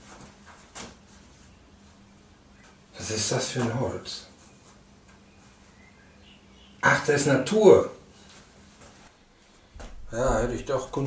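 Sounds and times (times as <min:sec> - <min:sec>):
faint low hum: 0:00.0 - 0:11.0
man speaking: 0:03.0 - 0:04.3, 0:06.8 - 0:08.0, 0:10.1 - 0:11.0.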